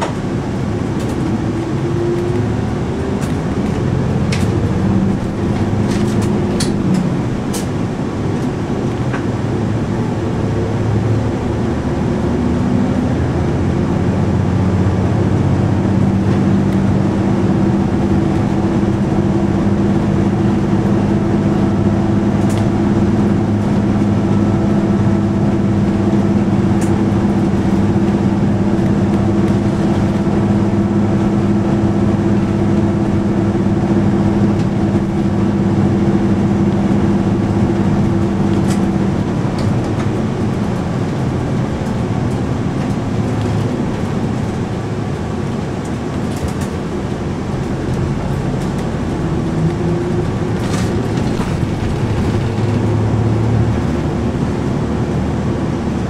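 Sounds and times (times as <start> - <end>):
diesel bus engine drone: 0.0 - 56.0
road noise: 0.0 - 56.0.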